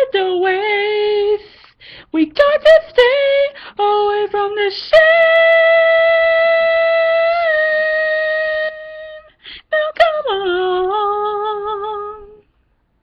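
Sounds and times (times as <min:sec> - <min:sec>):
quick breath: 0:01.4 - 0:02.1.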